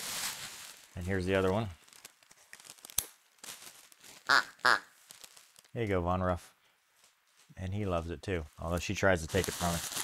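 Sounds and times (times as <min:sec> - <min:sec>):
plush toy rustling: 0:08.6 - 0:10.0.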